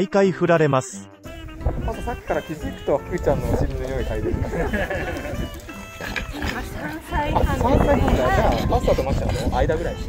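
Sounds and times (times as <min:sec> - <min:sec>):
light background music: 0:00.0 - 0:10.0
dogs making vocal noises: 0:08.1 - 0:10.0.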